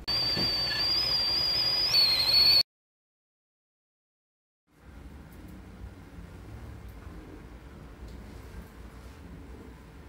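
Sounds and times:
kettle whistling: 0.0s - 2.7s.

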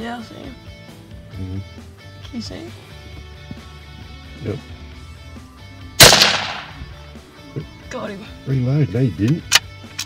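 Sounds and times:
rifle shot: 6.0s - 6.9s.

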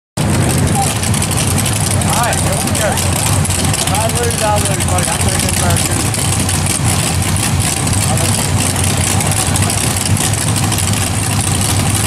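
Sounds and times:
race car engine idling: 0.2s - 12.0s
faint voices: 0.5s - 6.3s, 7.8s - 10.1s.

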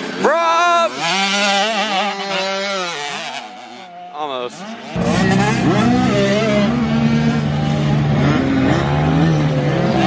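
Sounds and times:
dirt bike engine at high revs: 0.0s - 10.0s.

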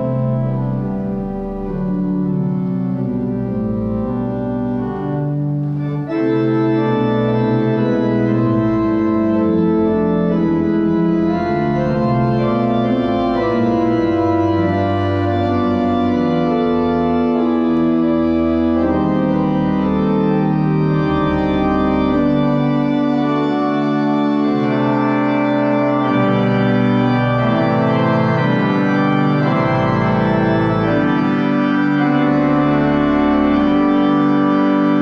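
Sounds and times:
pipe organ chords: 0.0s - 35.0s.

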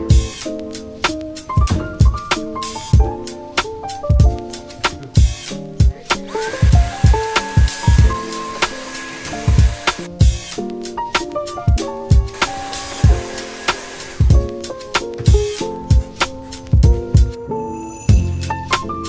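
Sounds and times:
background music with drum beat: 0.0s - 17.4s, 18.1s - 19.0s.

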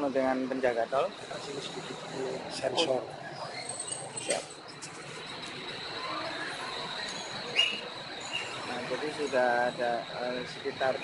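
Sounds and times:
cars queued at toll booth: 0.0s - 11.0s
faint high whine: 0.0s - 11.0s
sharp rising chirp: 5.6s - 11.0s.

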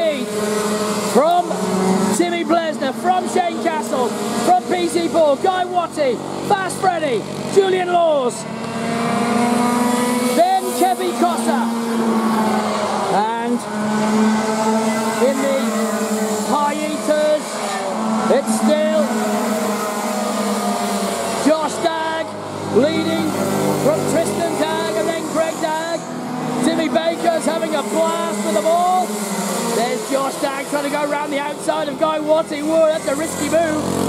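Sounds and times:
kart engines revving: 0.0s - 34.0s.

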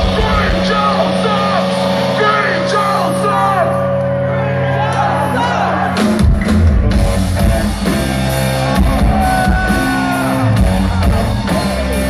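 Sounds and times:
live rock band playing loudly: 0.0s - 12.0s.

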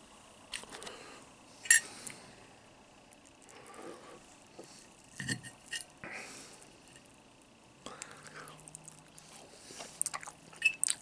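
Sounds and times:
soft mouth eating sounds: 7.9s - 11.0s.

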